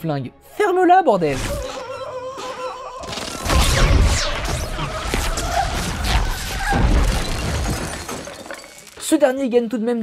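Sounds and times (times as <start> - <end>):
crash: 3.3 - 9.0.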